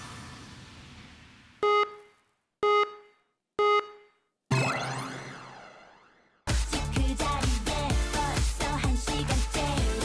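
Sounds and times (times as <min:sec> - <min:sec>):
electronic countdown beeps: 0:01.6 - 0:05.3
music: 0:06.5 - 0:10.0.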